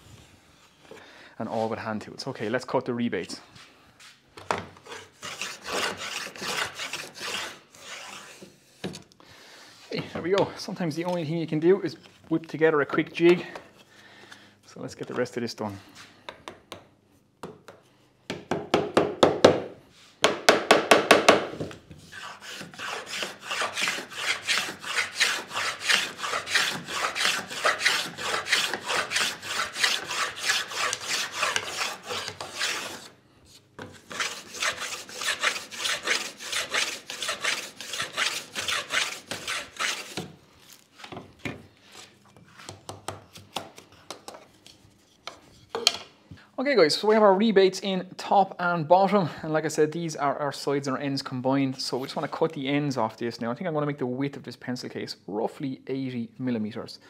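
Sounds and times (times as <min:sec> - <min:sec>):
hand plane cutting wood: 0:04.8 - 0:09.0, 0:22.0 - 0:33.2, 0:33.8 - 0:40.3.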